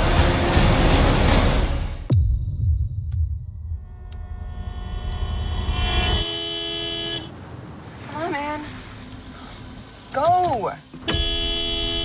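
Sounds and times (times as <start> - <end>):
sharp ticks: 4.0 - 4.4, 5.0 - 5.3, 8.0 - 9.3
car horn long blast: 5.8 - 7.3, 11.0 - 12.0.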